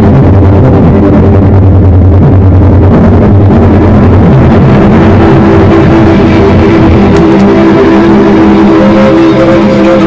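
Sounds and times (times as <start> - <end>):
amplified violin drone: 0.0 - 10.0.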